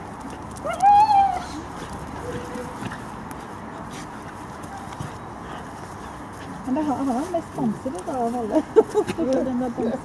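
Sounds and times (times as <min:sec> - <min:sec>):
puppies scuffling on grass: 0:00.0 - 0:10.0.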